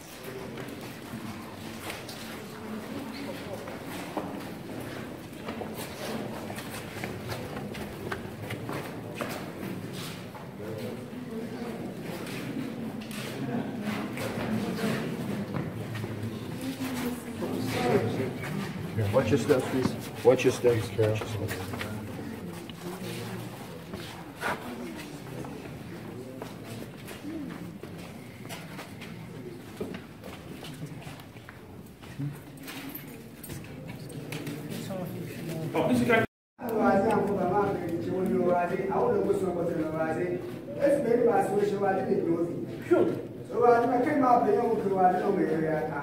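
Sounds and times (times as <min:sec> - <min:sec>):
low murmuring voices: 0:00.0 - 0:46.0.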